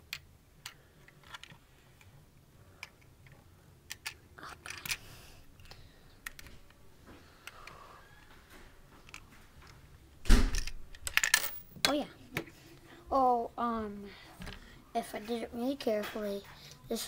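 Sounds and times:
plastic bricks clicking and knocking: 0.0 - 2.1, 2.8 - 5.0, 10.6 - 12.0.

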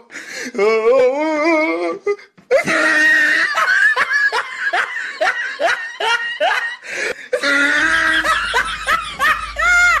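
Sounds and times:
person laughing: 2.5 - 10.0.

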